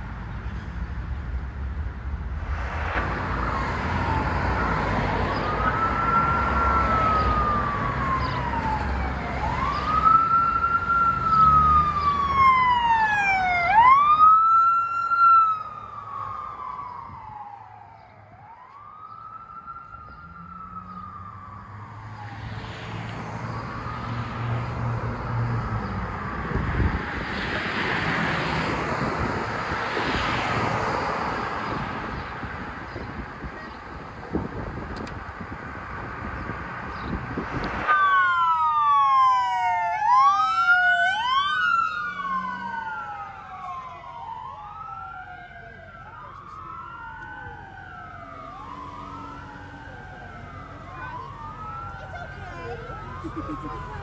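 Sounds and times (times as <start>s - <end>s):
passing road traffic: 0.0s - 54.0s
police sirens wailing: 3.0s - 54.0s.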